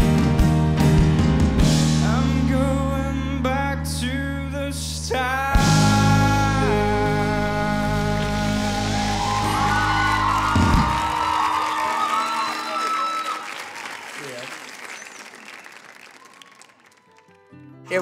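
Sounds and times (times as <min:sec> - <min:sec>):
audience applause and cheering: 0:08.0 - 0:17.3.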